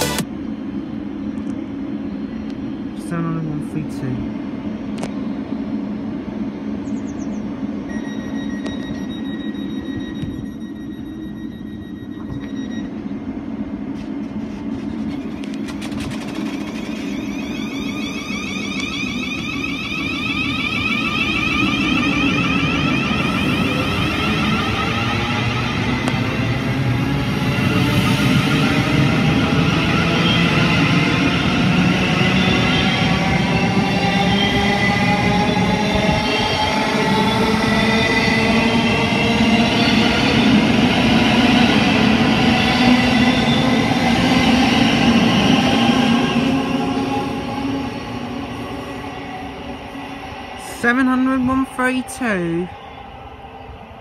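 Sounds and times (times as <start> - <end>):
high warning tone: 0.0 - 0.2, 7.8 - 13.8, 16.2 - 31.2, 44.6 - 52.9
train traction motors whining: 0.0 - 54.0.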